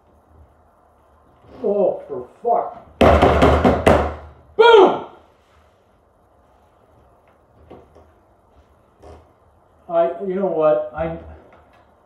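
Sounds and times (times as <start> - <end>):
noisy burst with sharp knocks: 3.0 - 4.3
man's short exclamation: 4.6 - 5.2.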